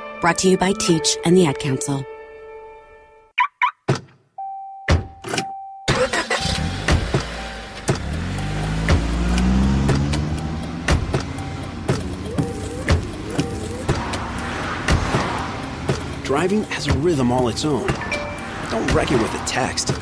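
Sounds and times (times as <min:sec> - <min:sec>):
background music: 0:00.0 - 0:03.8, 0:05.9 - 0:20.0
car engine starting and revving: 0:05.9 - 0:20.0
regular sharp ticks: 0:07.9 - 0:20.0
steady beeping tone: 0:11.3 - 0:14.5, 0:17.4 - 0:18.6.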